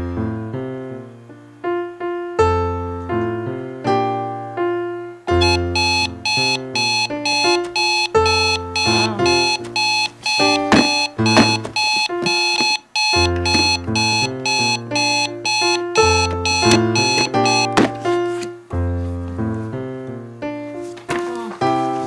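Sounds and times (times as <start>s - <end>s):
alarm clock beeping: 5.3s - 17.8s
keyboard music: 5.3s - 18.6s.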